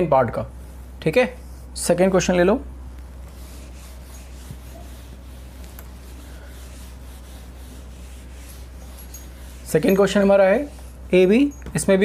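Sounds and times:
low electrical hum: 0.0s - 12.0s
eraser scrubbing whiteboard: 3.2s - 11.3s.

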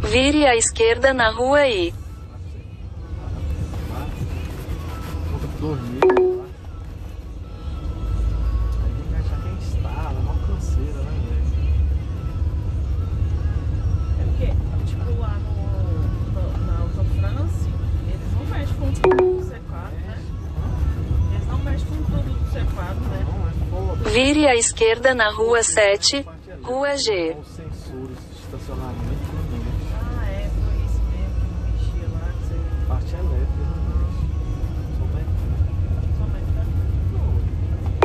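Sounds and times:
brief sliding tones: 6.0s - 6.6s.

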